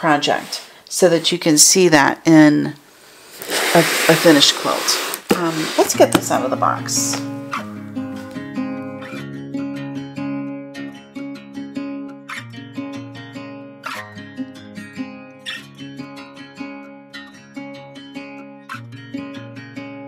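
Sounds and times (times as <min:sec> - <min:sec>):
acoustic guitar music: 0:05.4 - 0:20.0.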